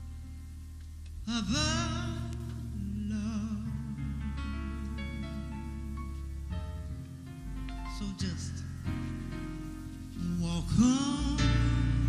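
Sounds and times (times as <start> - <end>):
deep bass: 0.0 - 12.0.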